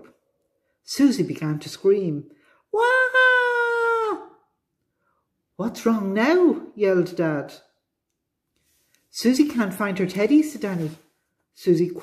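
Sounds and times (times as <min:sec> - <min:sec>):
woman wailing high-pitched: 0:02.8 - 0:04.4.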